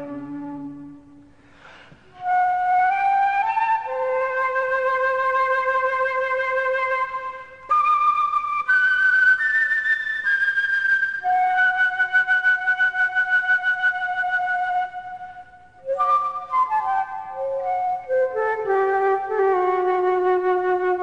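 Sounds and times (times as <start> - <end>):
solo flute notes: 0.0 - 21.0.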